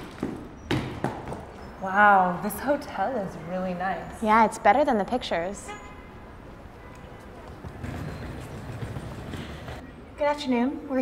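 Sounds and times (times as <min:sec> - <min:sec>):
footsteps walking: 0:06.5 - 0:09.8
suitcase wheels rolling on tiles: 0:07.2 - 0:09.8.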